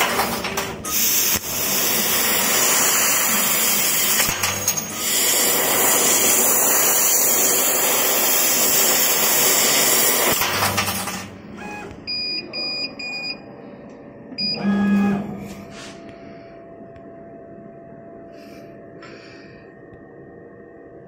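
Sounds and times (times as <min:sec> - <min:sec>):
laser cutter gas hissing: 0:00.8 - 0:10.6.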